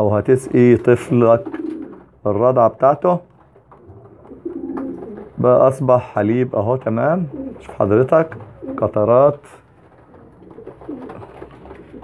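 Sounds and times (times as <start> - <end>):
pigeons cooing: 0.6 - 2.1, 3.8 - 5.4, 7.2 - 7.7, 8.3 - 9.0, 10.0 - 12.0.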